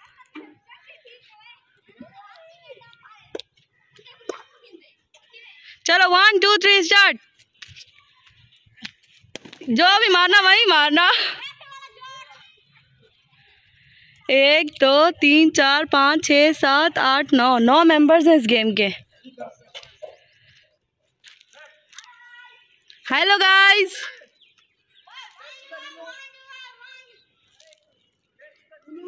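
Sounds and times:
distant children's voices: 0.0s - 5.8s, 7.6s - 8.8s, 11.2s - 14.3s, 21.6s - 23.1s, 24.1s - 29.0s
child speaking loudly: 11.4s - 12.4s, 25.1s - 27.2s
distant children calling: 21.5s - 27.6s.

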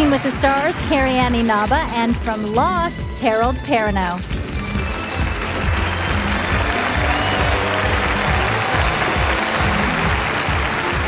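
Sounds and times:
audience applause: 0.0s - 1.2s, 4.5s - 11.0s.

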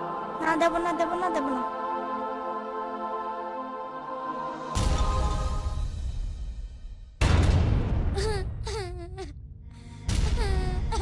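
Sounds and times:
soft background music: 0.0s - 6.9s
girl crying: 8.2s - 11.0s.

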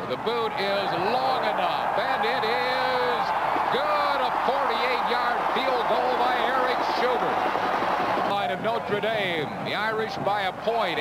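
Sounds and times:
stadium crowd cheering and shouting: 0.0s - 11.0s.

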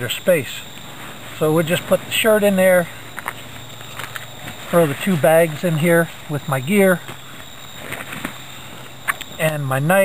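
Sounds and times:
insects chirring: 0.0s - 10.0s
rustling of nylon sack: 0.8s - 9.2s.

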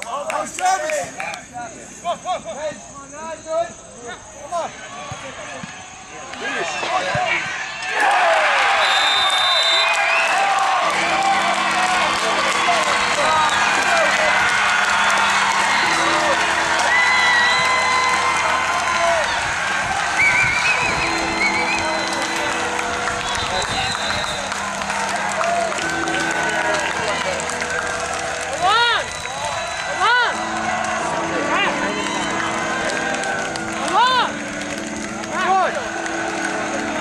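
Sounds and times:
crowd cheering and shouting: 4.7s - 37.0s.

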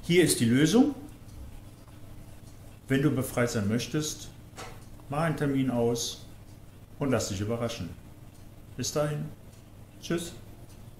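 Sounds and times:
man speaking: 0.0s - 1.1s, 2.9s - 4.4s, 5.1s - 6.3s, 7.0s - 8.0s, 8.8s - 9.4s, 10.0s - 10.5s
faint low hum: 0.0s - 10.9s.

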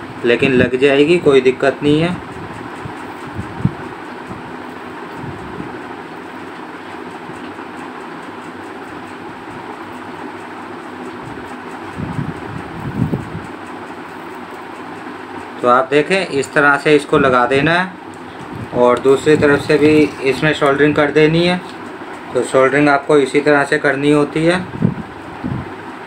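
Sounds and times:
fan-like whooshing: 0.0s - 7.4s, 11.1s - 14.5s, 15.7s - 22.8s.

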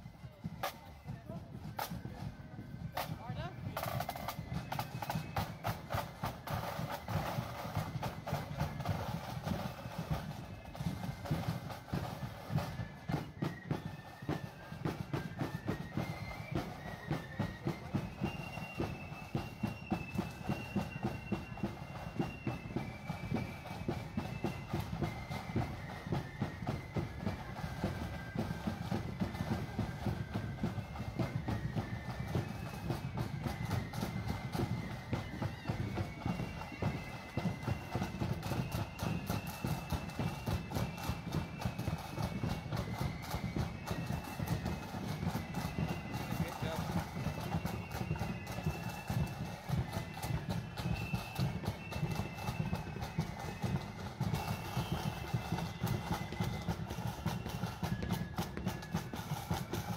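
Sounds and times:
marching band playing: 0.0s - 59.9s.

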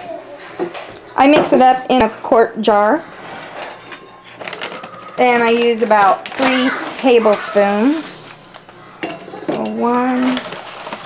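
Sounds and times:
plastic bag rustling and crinkling: 3.1s - 11.0s.

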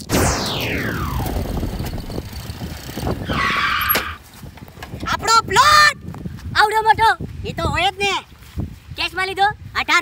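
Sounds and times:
whoosh falling in pitch: 0.0s - 2.4s
low rumble: 0.0s - 3.4s.

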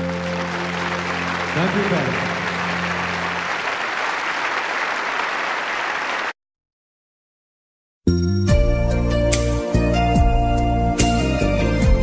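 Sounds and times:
audience applause: 0.0s - 6.4s.

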